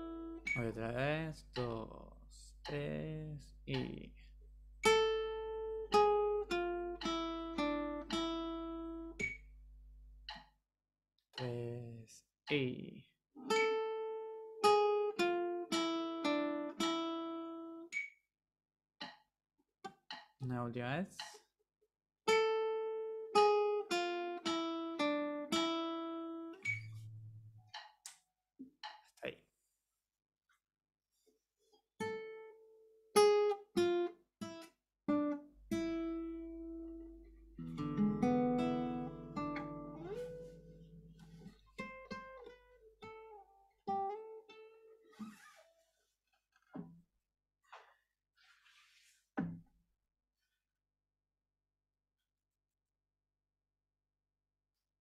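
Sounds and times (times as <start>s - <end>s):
acoustic guitar plucked melody: 0.0s - 10.5s, 13.4s - 18.1s, 22.3s - 28.0s, 32.0s - 45.7s.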